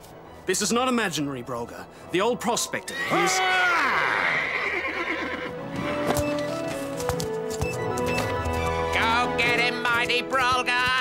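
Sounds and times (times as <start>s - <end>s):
background music: 0.0s - 11.0s
cartoon horse whinny: 3.8s - 6.1s
hoofbeats: 4.7s - 11.0s.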